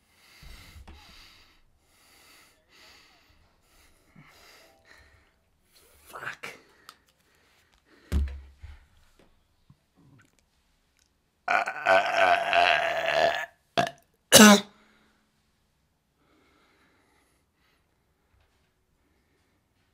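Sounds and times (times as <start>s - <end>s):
man belching: 11.5s - 14.7s.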